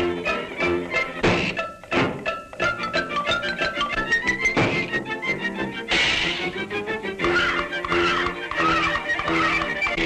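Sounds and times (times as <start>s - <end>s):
orchestral cartoon music: 0.0s - 10.0s
thump sound effect: 1.2s - 2.3s, 4.5s - 5.0s, 5.9s - 6.4s.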